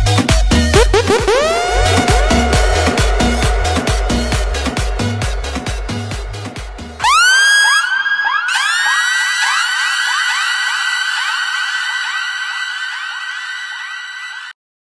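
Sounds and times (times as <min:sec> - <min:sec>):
kick drum beat: 0:00.3 - 0:07.0
rising electronic tones with echo: 0:00.7 - 0:14.5.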